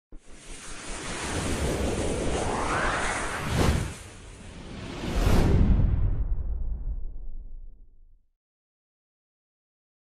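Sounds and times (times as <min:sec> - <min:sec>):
rushing whoosh: 0:00.3 - 0:07.2.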